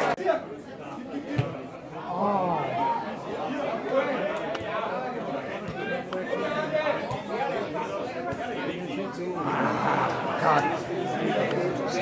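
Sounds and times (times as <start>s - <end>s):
chatter of spectators: 0.0s - 12.0s.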